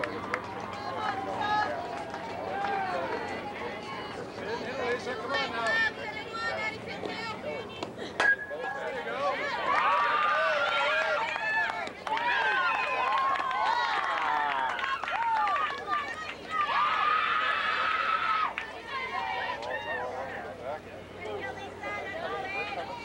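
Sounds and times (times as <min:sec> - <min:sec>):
bat cracking ball: 0:08.2 - 0:08.6.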